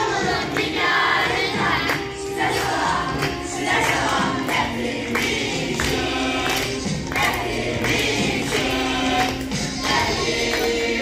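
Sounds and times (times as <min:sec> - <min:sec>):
backing music with steady beat: 0:00.0 - 0:11.0
children singing together: 0:00.0 - 0:11.0.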